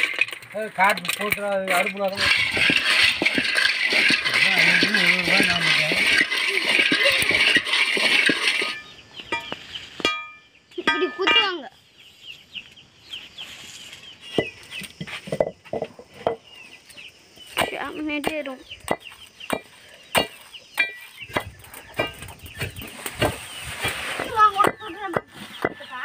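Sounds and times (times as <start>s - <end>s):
seeds rattling in a roasting pan: 0.0s - 9.0s.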